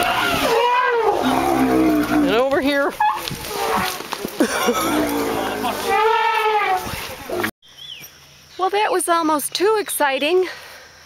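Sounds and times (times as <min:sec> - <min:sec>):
elephant squealing: 0:00.0 - 0:02.1, 0:04.7 - 0:07.4
elephant roaring: 0:00.0 - 0:07.5.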